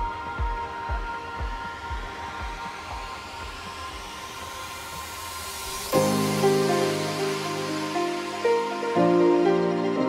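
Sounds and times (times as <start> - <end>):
kick drum: 0.0 - 4.3
white-noise riser sweeping up: 2.1 - 9.9.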